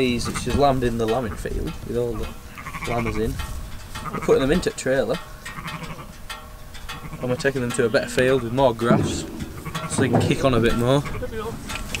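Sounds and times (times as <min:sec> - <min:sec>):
low wind rumble on microphone: 0:00.0 - 0:04.7, 0:08.4 - 0:12.0.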